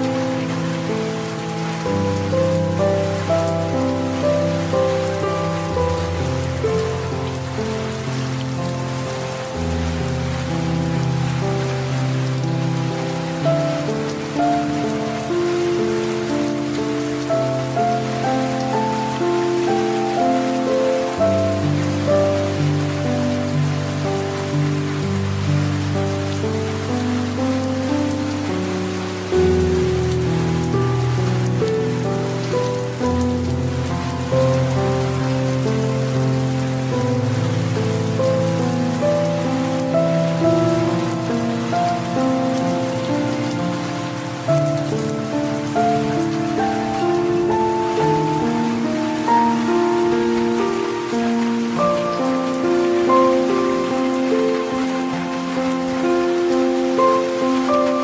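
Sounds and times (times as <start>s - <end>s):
slow music of low chords: 0.0s - 58.0s
steady rain: 0.0s - 58.0s.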